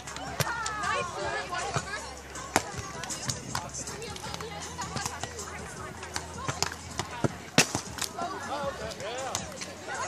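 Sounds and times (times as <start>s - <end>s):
voices: 0.0s - 10.0s
hands slapping volleyball: 2.5s - 5.4s, 6.0s - 8.2s.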